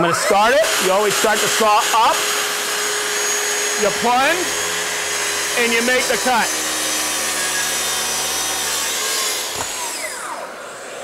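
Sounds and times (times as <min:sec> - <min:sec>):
circular saw cutting plywood: 0:00.0 - 0:11.0
dust extractor running: 0:00.0 - 0:11.0
saw blade spinning down: 0:00.1 - 0:10.9.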